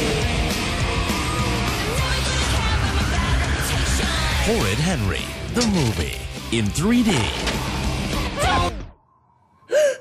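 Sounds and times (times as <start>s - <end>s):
person gasping loudly: 9.7s - 10.0s.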